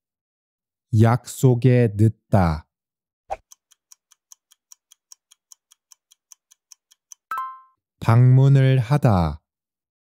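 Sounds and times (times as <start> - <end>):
clock-like ticking: 3.4 - 7.4.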